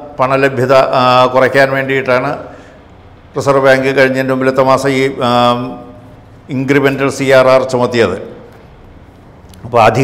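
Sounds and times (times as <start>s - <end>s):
man reading aloud in monotone: 0.0s - 2.7s, 3.3s - 8.6s, 9.6s - 10.0s.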